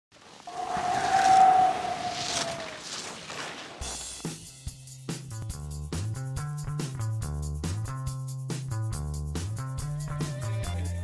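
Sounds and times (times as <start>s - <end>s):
skis scraping across snow: 0.1s - 4.2s
steady whistling tone: 0.5s - 2.8s
music with drums: 3.8s - 11.0s.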